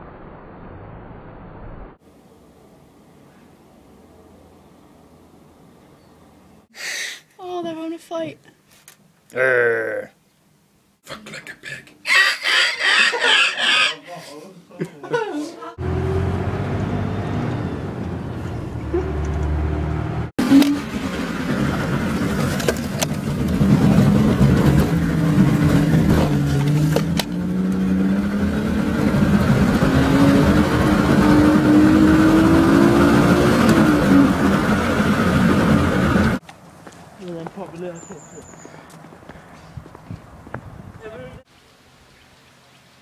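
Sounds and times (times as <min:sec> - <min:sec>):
engine running and revving: 0:15.8 - 0:36.4.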